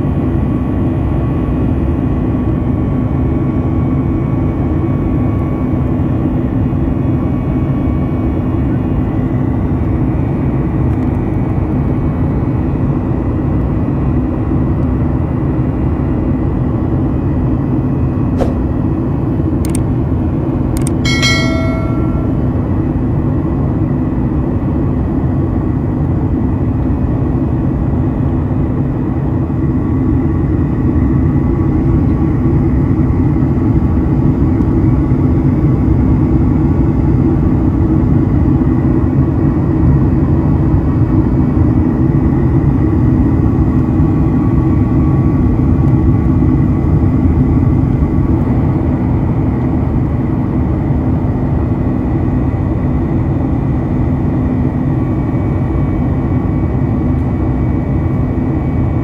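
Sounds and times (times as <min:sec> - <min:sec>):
jet engine drone and airflow: 0:00.0 - 0:59.0
faint steady whine: 0:18.6 - 0:24.3.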